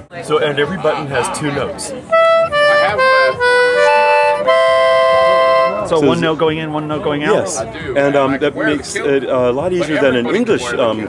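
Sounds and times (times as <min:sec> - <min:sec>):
concertina reed notes: 0:02.1 - 0:06.3.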